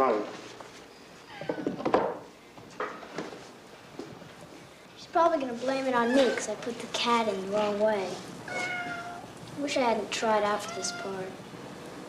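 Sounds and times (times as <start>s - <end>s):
cat meowing: 8.4s - 9.3s, 10.6s - 11.2s.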